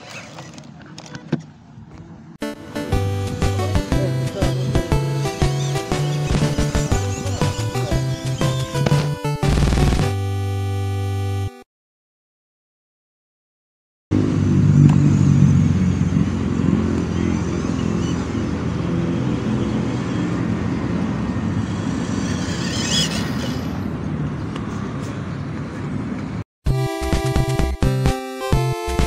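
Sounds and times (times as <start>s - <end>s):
toy car electric motor and gears: 21.6s - 23.8s
higher rasp: 21.6s - 23.9s.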